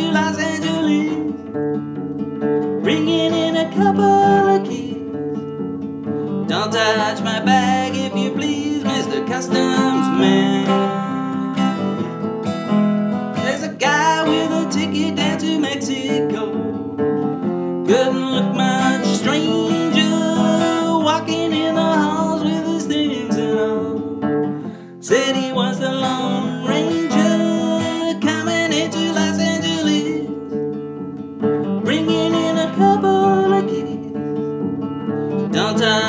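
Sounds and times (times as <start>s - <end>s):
man singing: 0.0s - 1.8s, 2.7s - 5.6s, 6.2s - 12.2s, 13.3s - 30.8s, 31.4s - 34.5s, 35.1s - 36.0s
acoustic guitar strummed: 0.0s - 36.0s.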